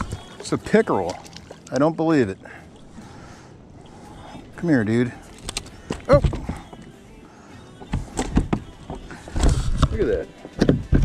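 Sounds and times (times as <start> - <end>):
fish flopping and thudding: 0.0 - 1.9, 5.2 - 6.9, 7.8 - 10.0.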